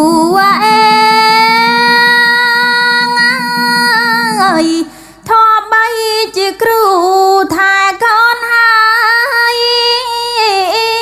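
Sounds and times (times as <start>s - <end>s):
high voice singing folk song: 0.0s - 11.0s.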